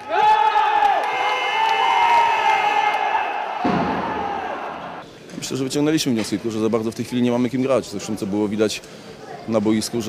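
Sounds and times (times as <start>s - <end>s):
crowd cheering and yelling: 0.0s - 5.0s
long held shouts: 0.0s - 5.0s.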